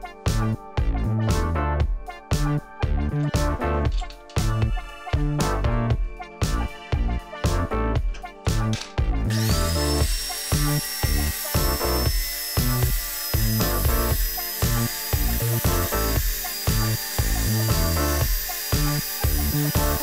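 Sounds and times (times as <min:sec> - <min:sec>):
background music with beat: 0:00.0 - 0:20.0
angle grinder cutting steel: 0:03.9 - 0:05.4, 0:08.7 - 0:20.0.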